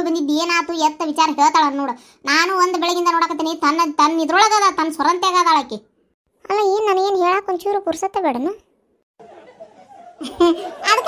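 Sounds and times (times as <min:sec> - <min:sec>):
high-pitched cartoon voice laughing: 0:10.2 - 0:11.0.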